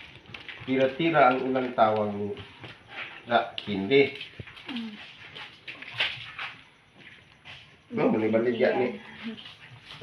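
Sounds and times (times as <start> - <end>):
wet squelching of coconut squeezed: 2.8 - 7.2.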